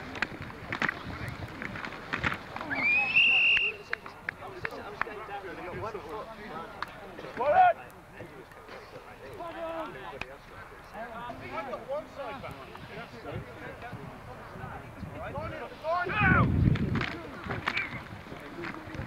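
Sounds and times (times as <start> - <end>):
players calling and talking: 0.0 - 19.0.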